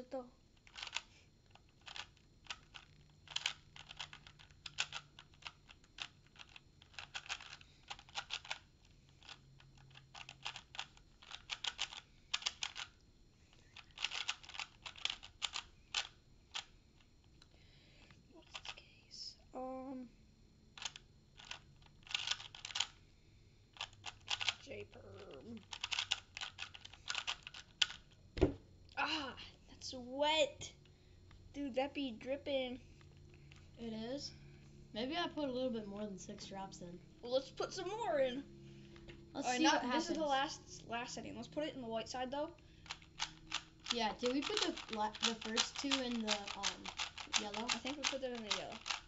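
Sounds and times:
puzzle cube layers clicking: 0:00.6 - 0:13.0, 0:13.7 - 0:16.7, 0:20.8 - 0:23.0, 0:23.8 - 0:24.6, 0:25.2 - 0:28.1, 0:42.9 - 0:49.0.

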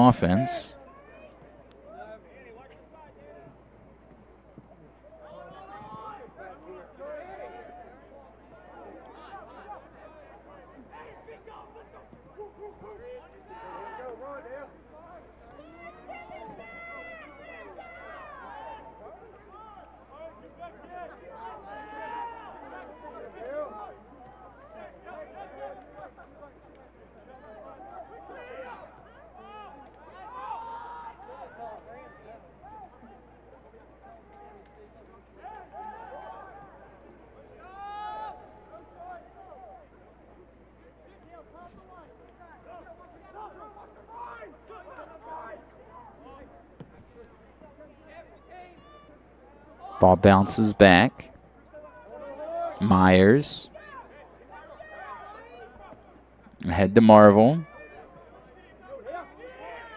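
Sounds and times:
voices calling and shouting: 0:00.0 - 0:00.7, 0:50.0 - 0:51.3, 0:52.8 - 0:54.2.

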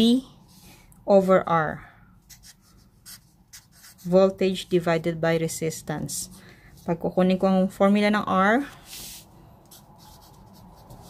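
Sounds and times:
marker pen writing on paper: 0:02.3 - 0:04.2, 0:09.0 - 0:11.0.

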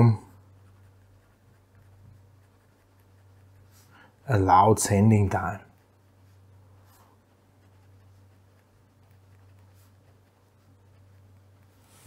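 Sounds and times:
pen scratching on paper: 0:00.0 - 0:04.2, 0:06.8 - 0:12.0
low steady hum: 0:00.0 - 0:12.0.

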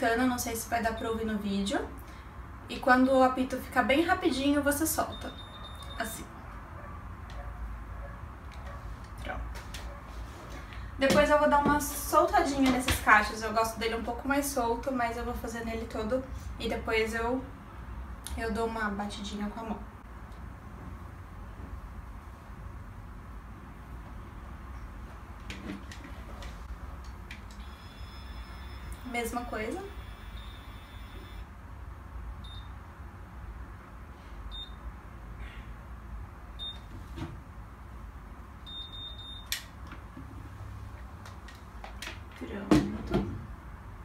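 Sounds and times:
faint high-pitched styler tone: 0:05.0 - 0:06.2, 0:27.6 - 0:31.4.

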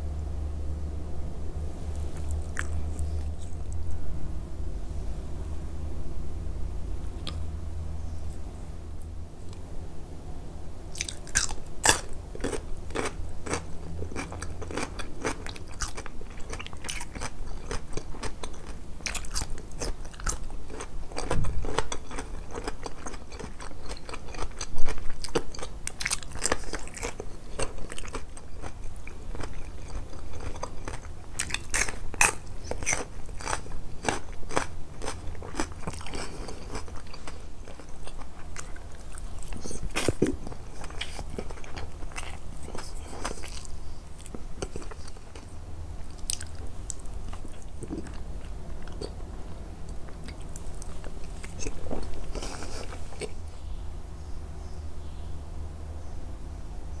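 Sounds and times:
person chewing crunchy food: 0:01.9 - 0:04.0, 0:10.9 - 0:53.5.

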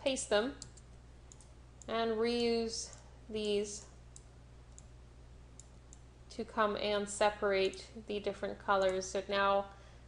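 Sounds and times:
low electrical hum: 0:00.0 - 0:10.0
faint mouse clicks: 0:02.8 - 0:03.1, 0:03.8 - 0:04.9, 0:05.6 - 0:06.1.

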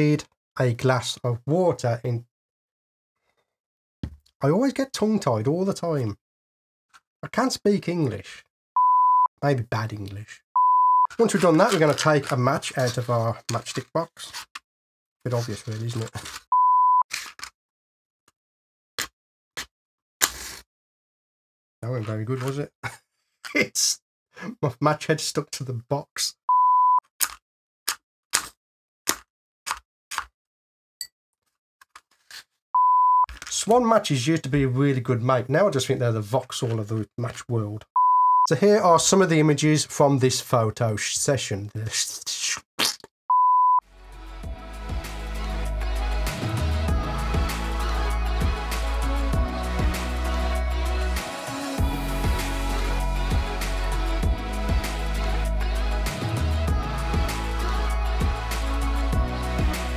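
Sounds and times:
electronic beep: 0:08.8 - 0:09.3, 0:10.6 - 0:11.1, 0:16.5 - 0:17.0, 0:26.5 - 0:27.0, 0:32.8 - 0:33.3, 0:38.0 - 0:38.5, 0:43.3 - 0:43.8
match scratching on matchbox: 0:11.2 - 0:13.0, 0:17.1 - 0:17.5, 0:20.2 - 0:20.6
outro music with bass note: 0:43.9 - 0:59.9.

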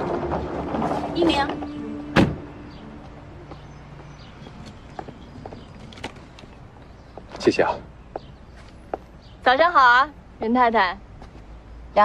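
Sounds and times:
car door shutting: 0:02.1 - 0:02.5.

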